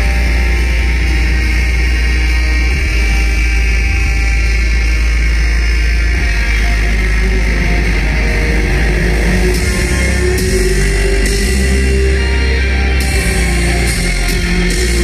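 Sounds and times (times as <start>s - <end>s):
loud industrial metal music: 0.0s - 15.0s.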